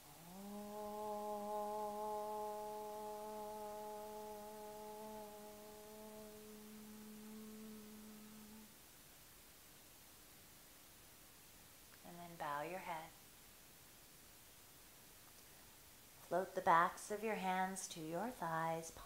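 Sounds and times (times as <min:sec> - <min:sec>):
woman chanting: 0:00.2 - 0:08.6, 0:12.0 - 0:13.2, 0:16.3 - 0:19.0.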